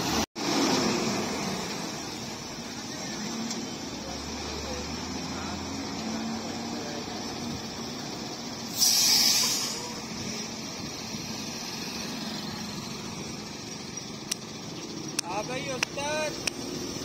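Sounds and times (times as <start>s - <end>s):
bus engine running: 0.0s - 17.0s
loud air hiss: 8.6s - 10.4s.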